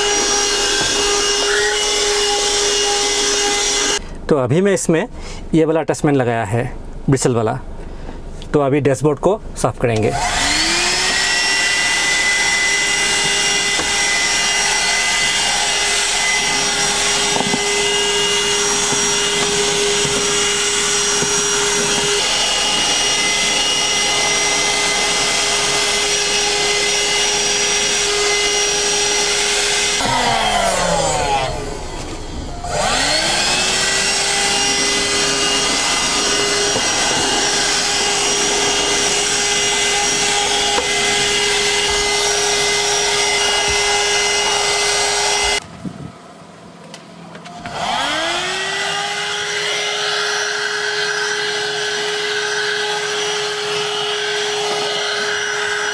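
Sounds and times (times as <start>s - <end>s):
handheld vacuum cleaner motor whine: 0.0s - 4.0s, 10.1s - 45.6s, 47.4s - 55.9s.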